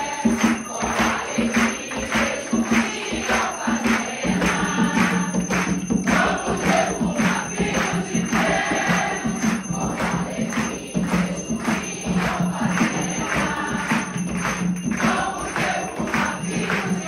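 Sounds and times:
congregation singing: 0.0s - 17.0s
rhythmic hand clapping: 0.0s - 17.0s.

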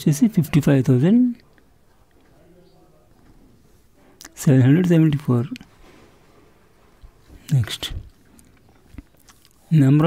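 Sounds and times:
person speaking: 4.2s - 5.7s, 7.4s - 8.2s.

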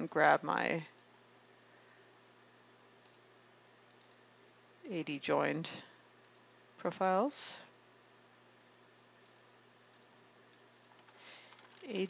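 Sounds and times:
low steady hum: 0.0s - 12.0s
computer mouse click: 3.0s - 3.2s, 3.9s - 4.2s, 6.2s - 6.5s, 9.2s - 11.8s.

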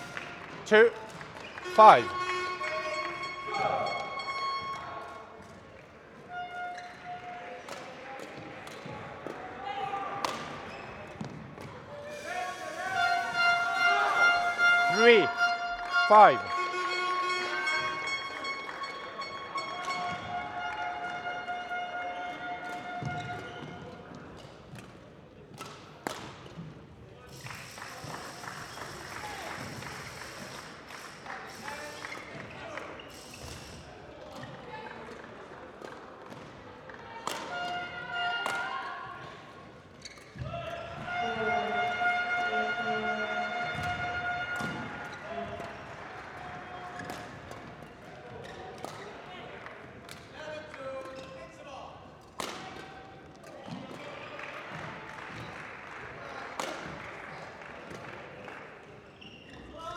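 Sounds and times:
voices echoing in hall: 0.0s - 59.9s
racket striking shuttlecock: 37.2s - 37.6s, 52.4s - 53.0s.

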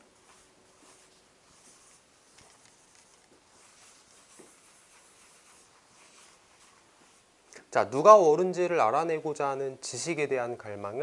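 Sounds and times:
eraser rubbing on chalkboard: 0.3s - 2.1s, 3.5s - 7.3s.

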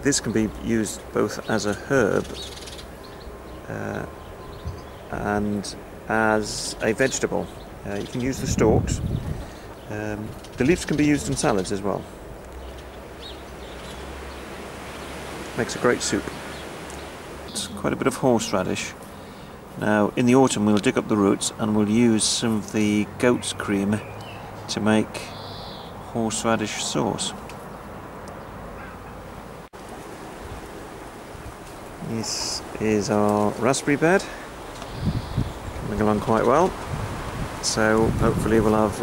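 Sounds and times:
bird chirp: 0.6s - 5.9s, 6.5s - 19.6s, 23.0s - 29.3s, 34.7s - 36.7s
wind on microphone: 4.5s - 5.2s, 7.8s - 11.8s, 34.8s - 39.0s.

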